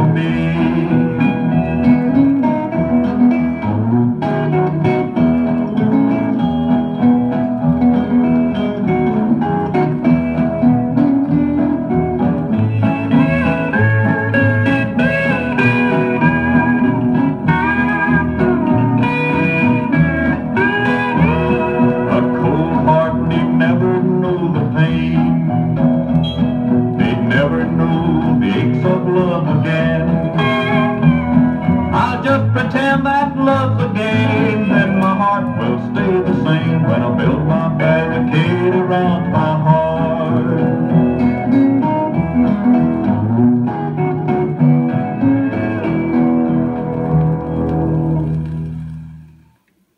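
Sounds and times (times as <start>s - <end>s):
steel guitar sliding: 0.0s - 49.6s
country record on a turntable: 0.0s - 49.9s.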